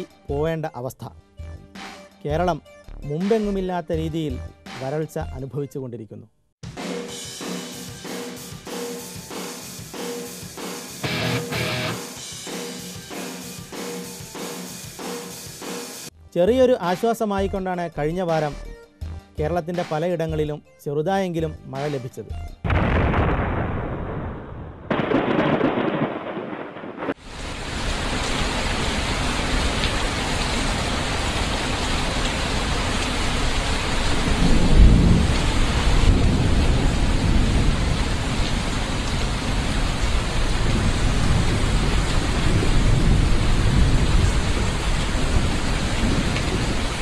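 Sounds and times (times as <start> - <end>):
heavy rain pouring: 11.0 - 12.0, 24.9 - 47.0
thunder rumble: 22.7 - 47.0.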